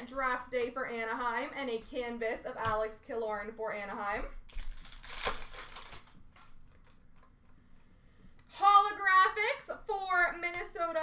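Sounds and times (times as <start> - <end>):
handling of trading cards: 4.5 - 8.0.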